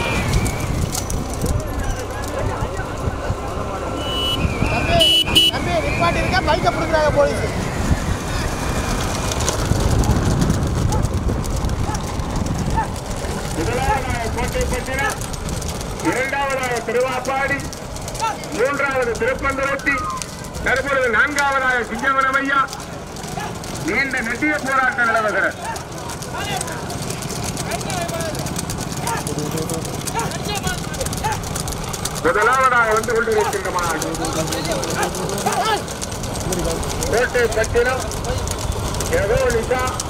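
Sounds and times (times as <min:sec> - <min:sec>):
motorbike and car engines rumbling: 0:00.0 - 0:40.0
road noise: 0:00.0 - 0:40.0
men shouting: 0:27.8 - 0:31.6, 0:32.3 - 0:38.5.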